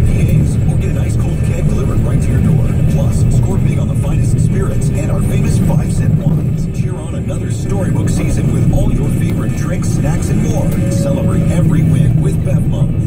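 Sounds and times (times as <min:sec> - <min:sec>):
car cabin road rumble: 0:00.0 - 0:13.0
radio voices: 0:00.0 - 0:13.0.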